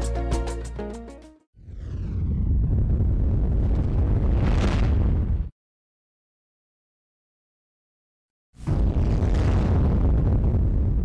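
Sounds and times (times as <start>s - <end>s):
falling swoosh: 1.6s - 3.0s
low explosion-like rumble: 1.6s - 5.5s, 8.6s - 11.0s.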